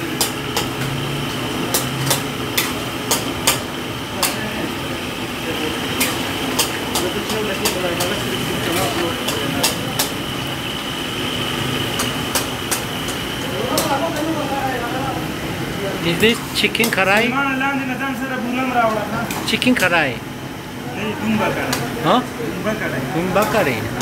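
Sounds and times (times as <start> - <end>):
kitchen noise: 0.0 - 24.0
metal tongs clacking against woks: 0.2 - 1.0, 1.6 - 3.6, 4.2 - 4.6, 5.8 - 10.3, 11.9 - 14.4, 16.2 - 17.3, 23.3 - 23.7.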